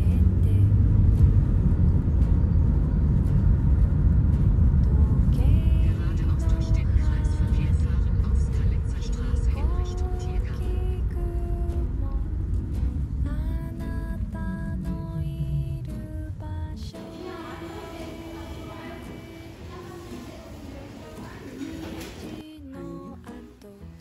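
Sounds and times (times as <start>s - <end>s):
vehicle interior rumble: 0.0s - 22.4s
voice with drawn-out pitched tones: 4.8s - 12.4s, 13.2s - 22.4s.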